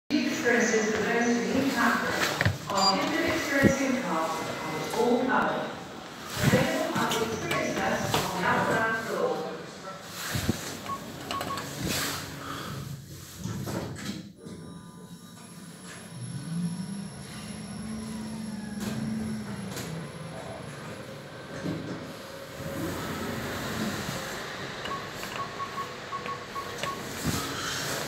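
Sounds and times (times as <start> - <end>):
short high beeps: 2.7 - 3.1, 24.8 - 27.1
lift motor hum: 14.4 - 28.0.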